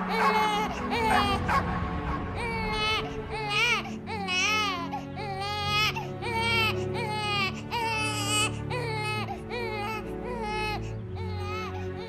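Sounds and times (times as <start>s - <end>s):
newborn baby crying: 0.0s - 1.5s, 2.4s - 12.0s
soft music of low held tones: 0.0s - 12.0s.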